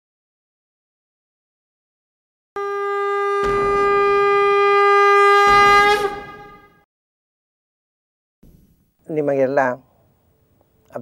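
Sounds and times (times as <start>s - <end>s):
conch shell blown: 2.6s - 6.8s.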